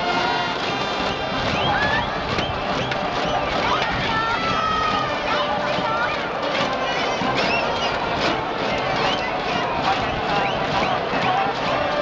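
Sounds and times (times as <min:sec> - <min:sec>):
crowd cheering and yelling: 0:00.0 - 0:12.0.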